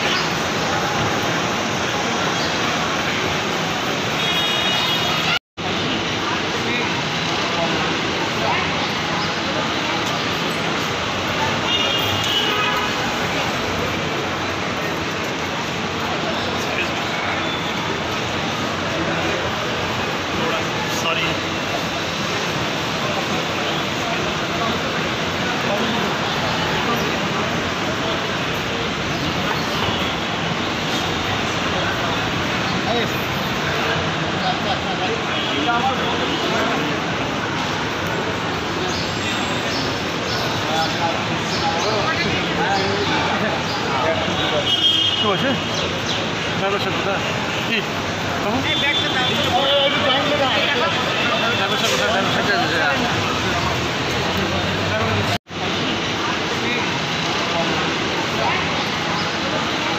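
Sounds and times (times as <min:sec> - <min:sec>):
loud rushing background noise: 0:00.0 - 0:59.9
murmur of voices: 0:00.0 - 0:59.9
outdoor traffic: 0:00.0 - 0:59.9.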